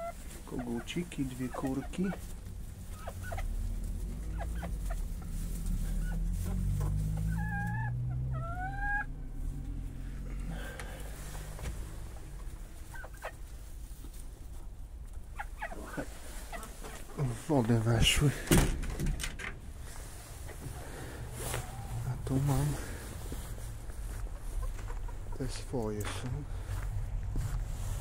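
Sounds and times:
chicken calls: 0.0s - 18.8s, 19.6s - 26.8s
low steady rumble: 0.0s - 28.0s.

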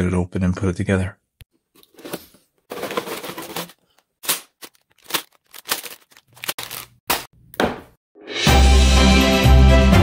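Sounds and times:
cardboard box rustling: 1.8s - 3.8s, 4.6s - 6.8s
plastic bags crinkling: 1.8s - 7.3s.

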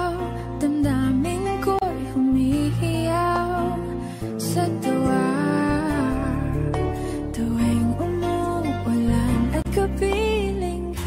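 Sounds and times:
instrumental backing: 0.0s - 11.0s
pop love ballad singing: 0.0s - 11.0s.

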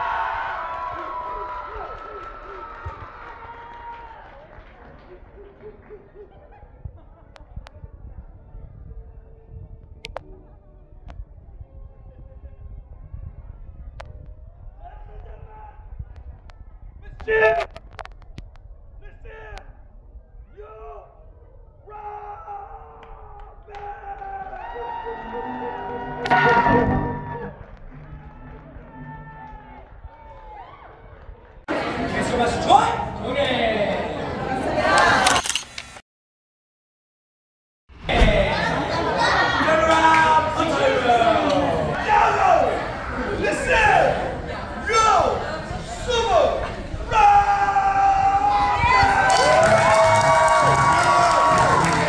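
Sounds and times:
voices echoing in a hall: 38.1s - 48.9s.

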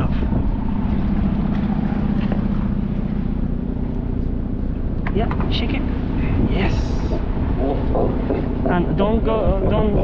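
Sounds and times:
low mechanical drone: 0.0s - 10.0s.

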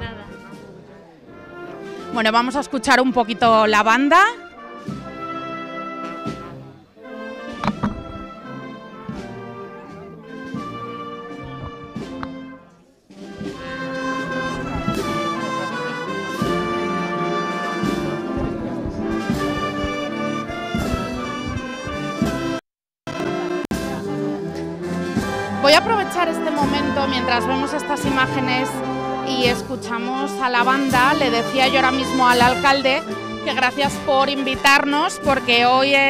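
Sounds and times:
marching band playing: 0.0s - 36.0s.

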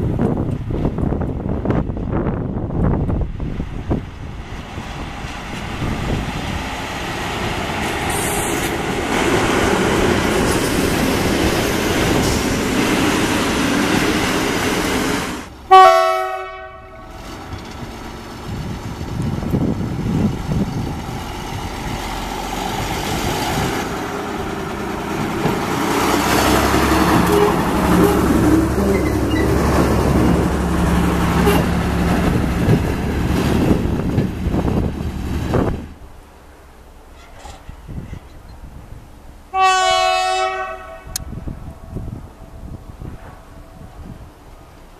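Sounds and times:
diesel train rumbling past: 0.0s - 44.9s
train horn blast: 15.7s - 17.2s, 27.1s - 29.1s, 39.5s - 41.4s
track motor car engine hum: 16.8s - 37.0s.

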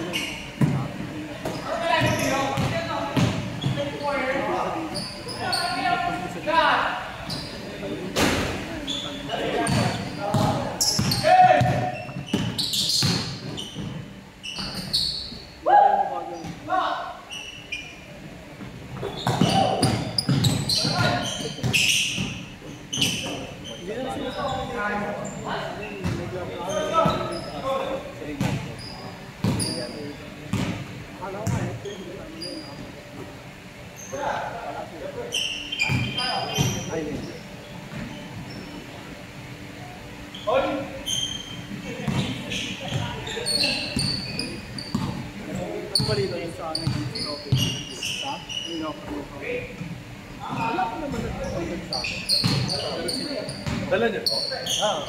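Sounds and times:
players' voices: 0.0s - 14.4s, 15.4s - 55.0s
basketball bouncing on hardwood floor: 2.0s - 3.8s, 19.2s - 21.0s
basketballs bouncing on hardwood: 2.0s - 3.8s, 9.7s - 13.9s, 19.2s - 22.3s, 30.5s - 30.8s, 31.4s - 31.7s, 42.1s - 43.2s, 52.4s - 52.7s, 53.6s - 53.9s.

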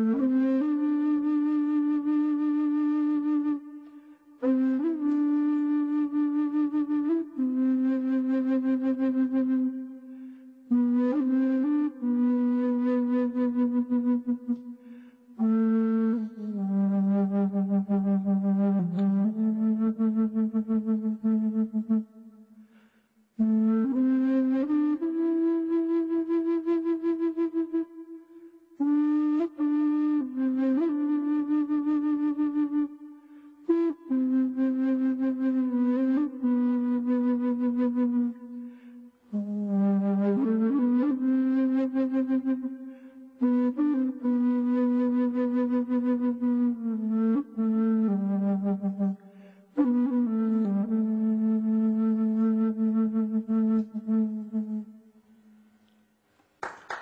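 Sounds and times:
slow flute melody: 0.0s - 56.2s.

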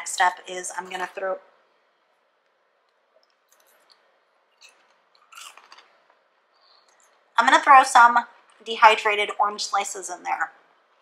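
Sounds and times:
person chewing popcorn crunching: 3.2s - 7.1s.

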